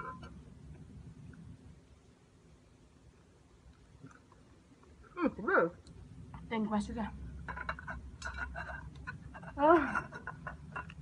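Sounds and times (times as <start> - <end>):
ceramic plate clinking on stone: 7.5 - 11.0.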